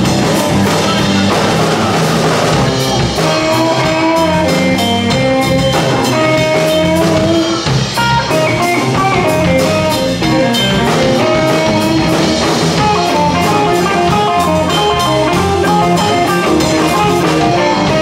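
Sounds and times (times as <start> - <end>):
blues-rock band playing: 0.0 - 18.0
drum beat: 0.0 - 18.0
lead electric guitar line: 0.0 - 18.0.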